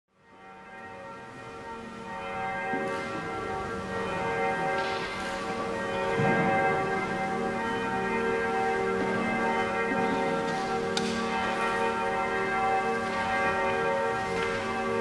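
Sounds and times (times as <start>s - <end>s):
church bells ringing: 0.1s - 15.0s.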